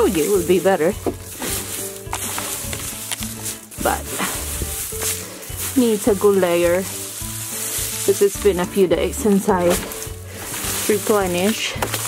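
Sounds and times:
background music: 0.0s - 12.0s
dry straw rustling: 0.0s - 12.0s.

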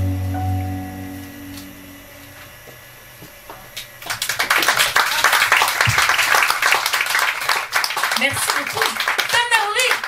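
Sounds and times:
jazz band chord: 0.0s - 3.0s
audience applauding: 4.0s - 10.0s.

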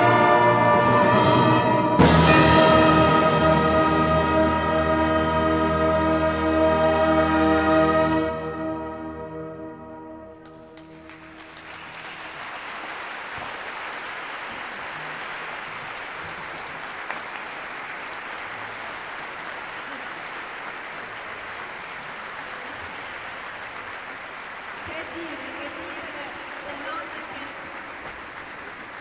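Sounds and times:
orchestral chord: 0.0s - 11.2s
audience applauding: 10.4s - 29.0s.

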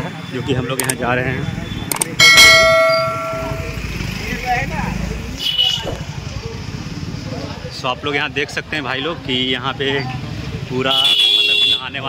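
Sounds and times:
click: 1.9s - 2.1s
bright bell ding: 2.2s - 3.9s.

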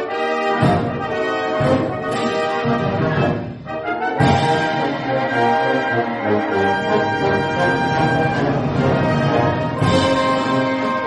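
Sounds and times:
wind band playing chords: 0.0s - 11.0s.

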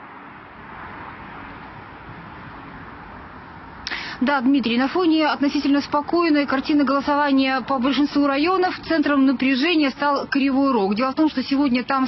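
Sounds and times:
distant traffic hum: 0.0s - 12.0s
woman's voice: 3.9s - 12.0s.

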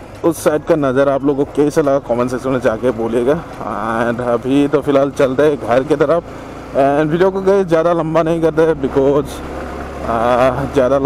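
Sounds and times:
motorcycle engine drone: 0.0s - 11.0s
man talking: 0.2s - 9.4s, 10.0s - 11.0s.

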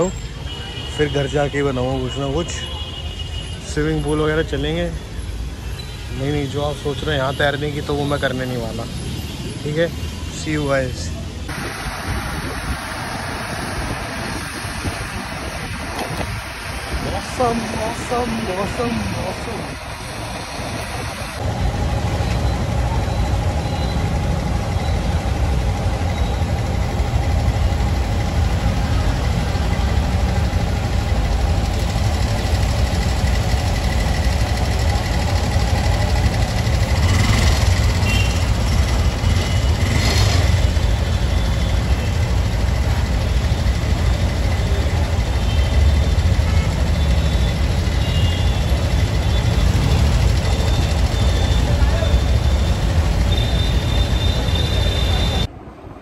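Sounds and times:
street traffic: 0.0s - 56.0s
motorcycle engine low rumble: 21.4s - 55.5s.

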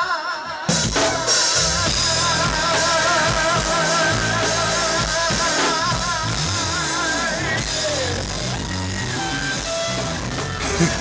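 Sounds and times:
instrumental live band music: 0.6s - 11.0s.

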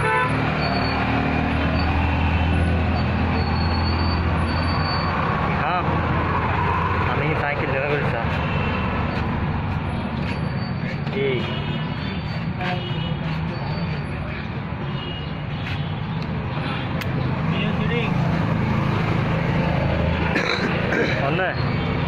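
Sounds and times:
road traffic: 0.0s - 22.0s.

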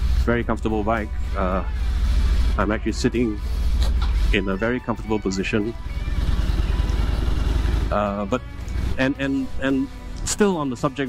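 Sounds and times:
motorcycle engine rumbling: 0.0s - 9.9s.

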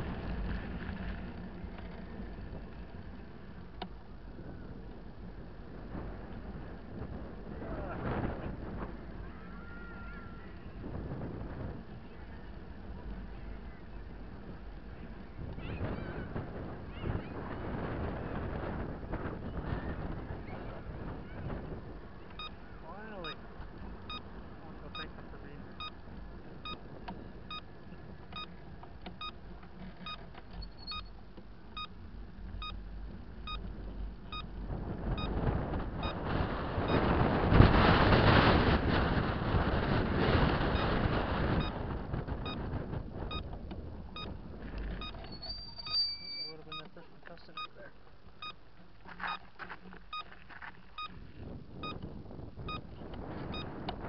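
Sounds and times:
road and wind noise: 0.0s - 54.0s.

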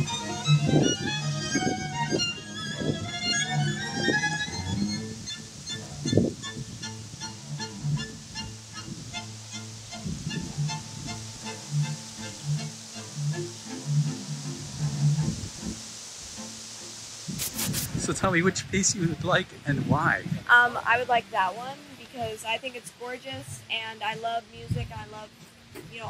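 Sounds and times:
string ensemble playing: 0.0s - 18.5s.

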